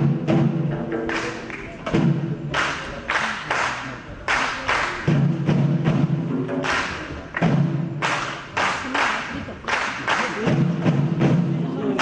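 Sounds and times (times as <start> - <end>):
frame drums beating: 0.0 - 12.0.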